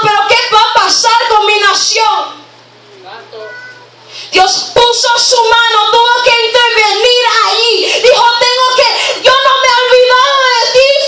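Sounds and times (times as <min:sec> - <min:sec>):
woman singing into microphone: 0:04.4 - 0:11.0.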